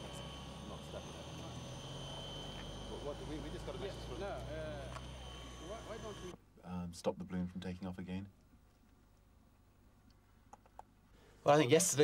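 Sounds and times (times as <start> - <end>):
low hum: 0.0 - 6.4.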